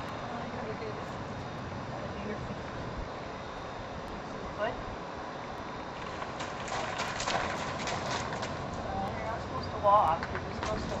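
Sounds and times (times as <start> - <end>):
horse hooves on gravel: 6.0 - 9.5, 10.1 - 11.0.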